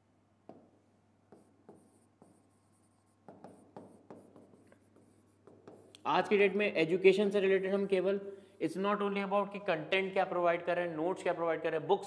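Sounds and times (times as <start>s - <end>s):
pen tapping on glass screen: 0.4s - 2.6s, 3.2s - 6.0s
pen scratching on glass screen: 1.3s - 6.0s.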